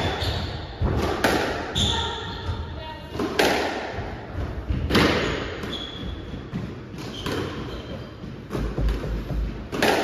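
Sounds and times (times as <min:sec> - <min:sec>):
squash ball cracks: 0:03.2 - 0:03.9, 0:09.7 - 0:10.0.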